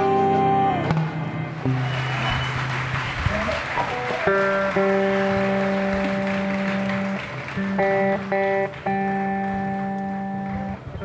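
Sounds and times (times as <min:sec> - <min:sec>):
band playing held chords: 0:00.0 - 0:10.9
audience applause: 0:01.6 - 0:10.1.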